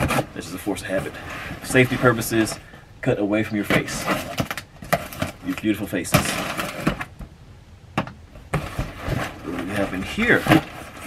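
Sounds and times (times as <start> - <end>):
cardboard and paper rustling: 0.0 - 2.7, 3.5 - 7.1, 8.5 - 11.0.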